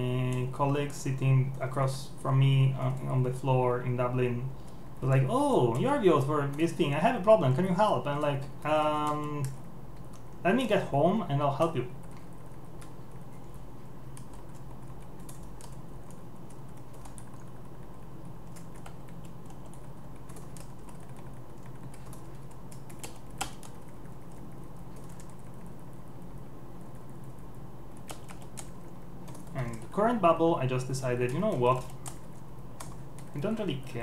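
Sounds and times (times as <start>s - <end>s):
computer keyboard typing: 0.0s - 0.5s, 5.0s - 10.4s, 12.0s - 30.0s, 30.8s - 34.0s
steady low hum: 0.0s - 34.0s.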